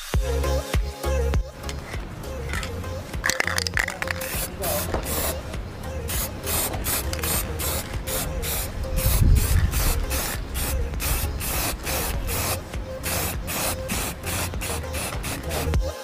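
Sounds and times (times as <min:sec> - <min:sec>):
spray-paint can hissing: 0:01.7 - 0:16.0.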